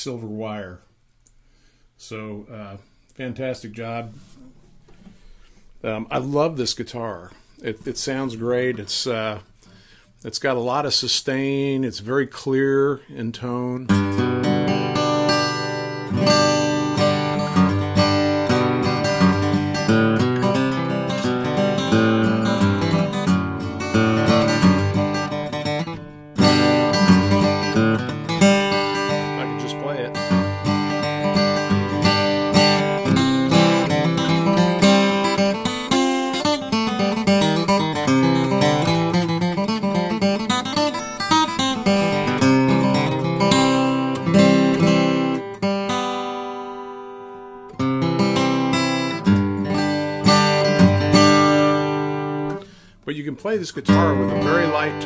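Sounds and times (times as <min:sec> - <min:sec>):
acoustic guitar playing: 0:13.8 - 0:55.0.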